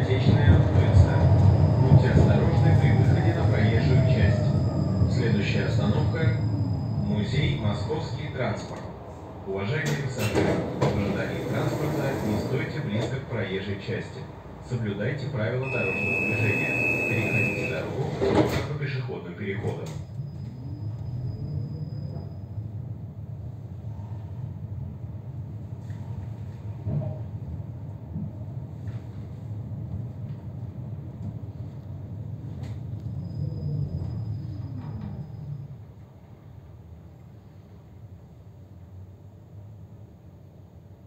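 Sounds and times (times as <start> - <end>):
tram wheels rumbling on rail: 0.0 - 41.0.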